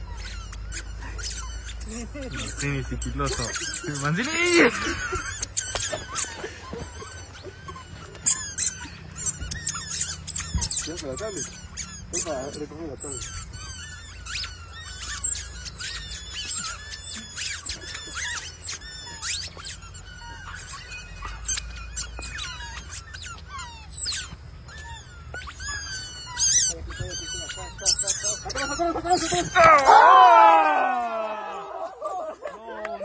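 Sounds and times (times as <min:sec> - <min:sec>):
rubber chicken toys squeaking: 0:00.0 - 0:33.0.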